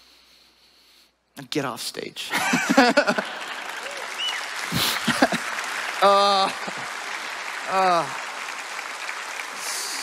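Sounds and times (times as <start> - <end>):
congregation applauding: 2.5 - 10.0.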